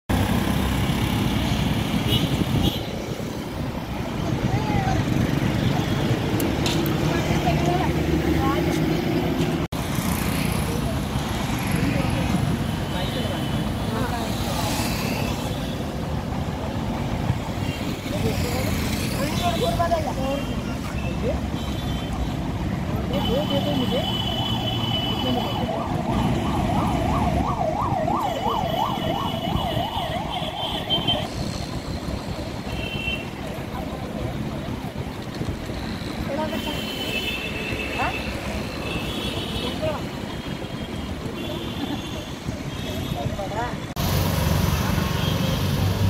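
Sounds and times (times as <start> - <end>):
traffic passing: 0.1 - 46.0.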